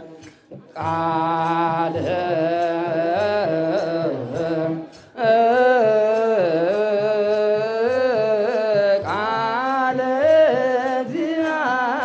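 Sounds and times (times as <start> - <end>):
cantors singing liturgical chant: 0.0 - 12.0.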